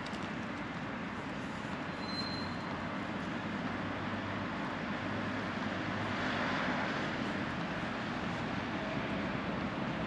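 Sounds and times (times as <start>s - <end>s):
distant traffic hum: 0.0s - 10.0s.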